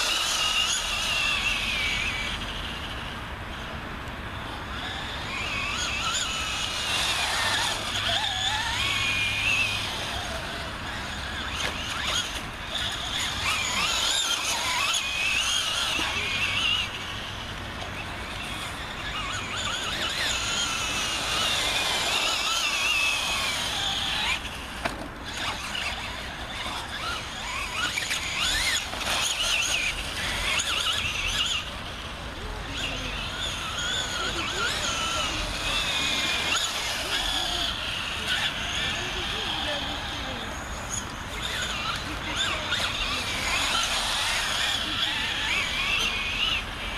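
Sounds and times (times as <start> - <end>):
toy truck motor whining: 0.0 - 46.9.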